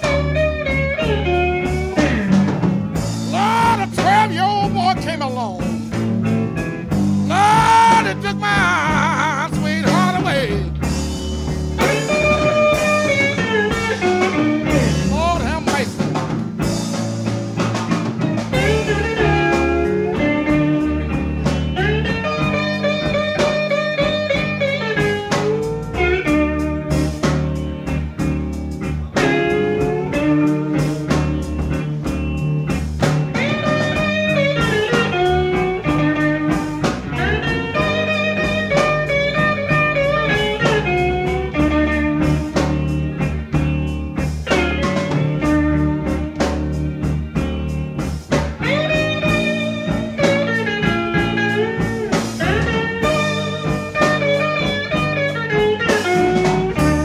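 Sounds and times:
bass and drums: 0.0s - 57.0s
lead electric guitar bending notes: 0.0s - 57.0s.

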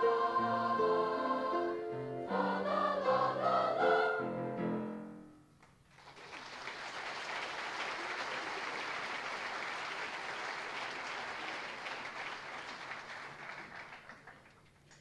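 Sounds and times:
audience applauding: 5.9s - 15.0s.

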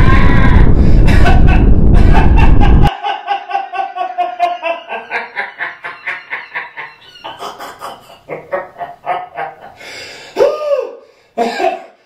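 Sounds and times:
person laughing in rapid pulses: 0.2s - 9.8s.

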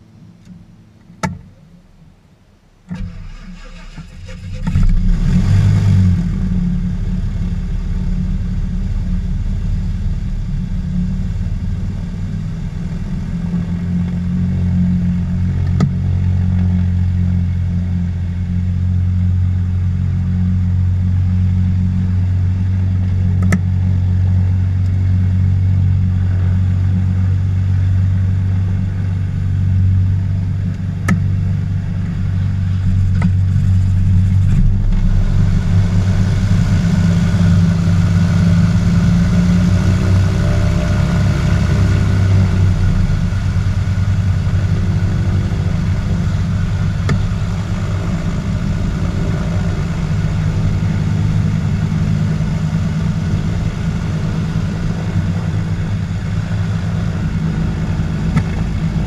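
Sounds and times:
piston engine idling: 21.9s - 40.1s, 41.7s - 59.0s.

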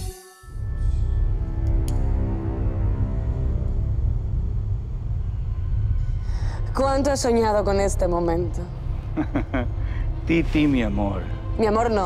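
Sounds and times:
low bass drone: 0.6s - 12.0s.

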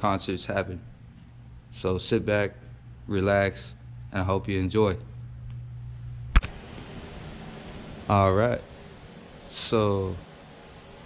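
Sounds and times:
steady hiss: 0.0s - 11.0s
sharp click: 6.3s - 6.5s.

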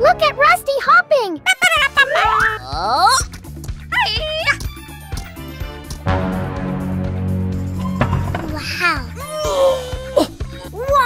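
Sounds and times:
cheerful children's music: 7.6s - 11.0s.

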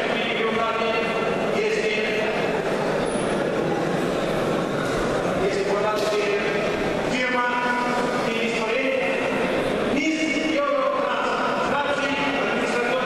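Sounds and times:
man's voice over public address: 0.0s - 2.6s, 5.4s - 13.0s.

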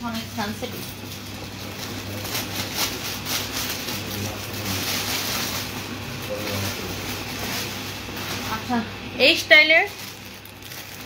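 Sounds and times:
plastic wrapping rustling: 0.0s - 11.0s
steady low hum: 0.0s - 11.0s.

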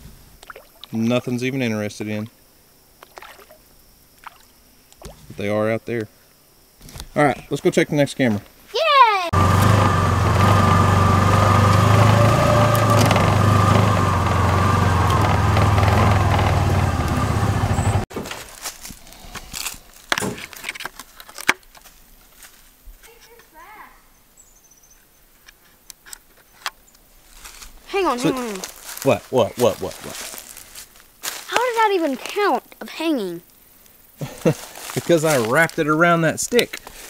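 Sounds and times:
off-road vehicle engine running: 9.3s - 18.1s.

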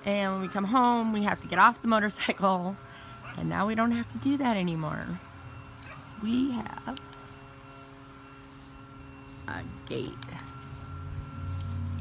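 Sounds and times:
low engine hum: 1.3s - 12.0s.

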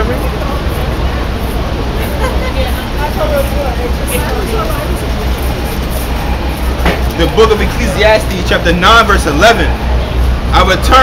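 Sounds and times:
passing vehicle rumbling: 0.0s - 11.0s.

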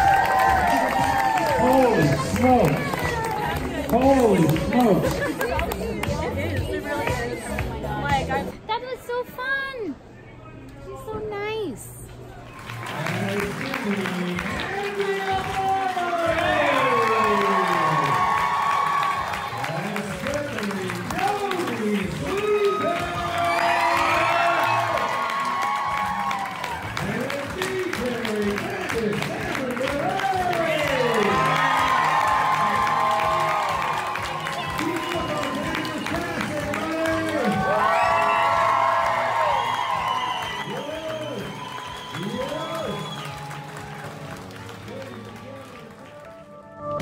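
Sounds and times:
audience clapping: 0.0s - 6.5s, 12.4s - 47.0s
music playing: 0.0s - 8.8s, 12.6s - 47.0s.

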